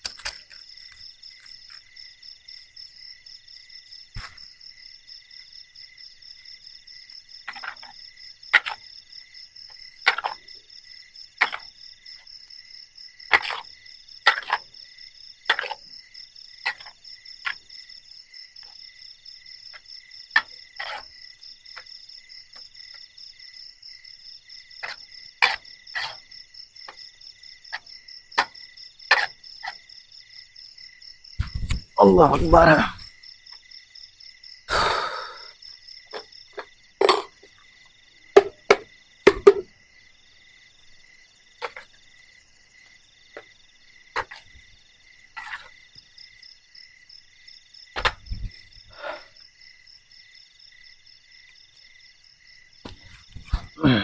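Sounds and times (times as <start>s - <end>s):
crickets and insects trilling: 0.0s - 54.0s.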